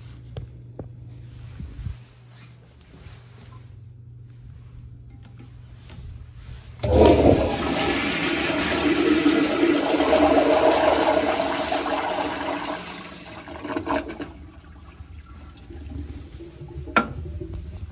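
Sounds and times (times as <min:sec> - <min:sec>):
toilet flushing: 0:06.8 - 0:17.9.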